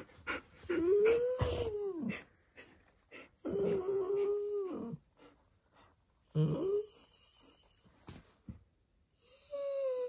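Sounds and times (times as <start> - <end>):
dog whining: 0.6 - 2.2, 3.4 - 5.0, 6.3 - 7.8, 9.2 - 10.0.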